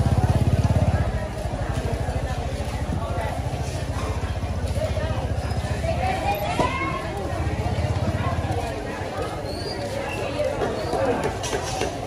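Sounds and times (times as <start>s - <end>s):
faint market voices: 0.0s - 12.0s.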